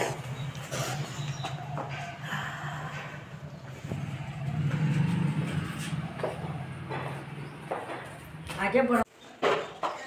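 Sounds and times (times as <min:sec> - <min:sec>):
low engine hum: 0:01.6 - 0:08.4.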